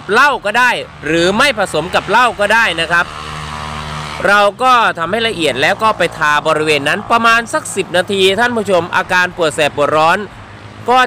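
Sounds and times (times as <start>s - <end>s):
man speaking: 0.0s - 3.1s, 4.2s - 11.0s
motor-like hum: 0.0s - 8.7s.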